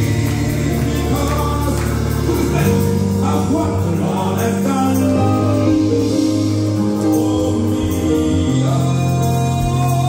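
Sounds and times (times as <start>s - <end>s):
electronic keyboard bass chords: 0.0s - 10.0s
group singing: 0.0s - 10.0s.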